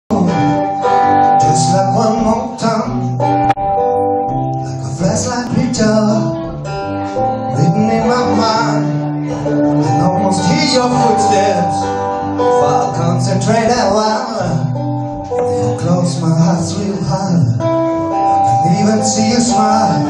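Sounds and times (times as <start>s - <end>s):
solo blues guitar: 0.1s - 20.0s.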